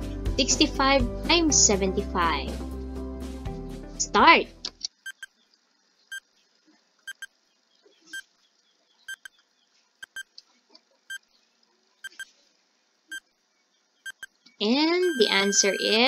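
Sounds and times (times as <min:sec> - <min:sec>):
high timer ticks: 0:05.1 - 0:05.3, 0:07.1 - 0:07.3, 0:09.1 - 0:09.4, 0:10.0 - 0:10.3, 0:12.0 - 0:12.2, 0:14.1 - 0:14.3, 0:15.0 - 0:16.0.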